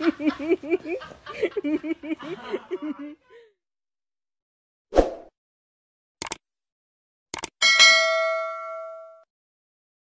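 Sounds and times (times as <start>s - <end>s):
notification bell ding: 7.6s - 9.3s.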